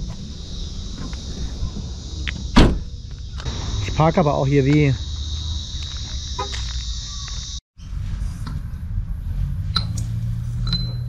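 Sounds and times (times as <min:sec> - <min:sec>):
high-pitched insect chorus: 0:00.0 - 0:07.6.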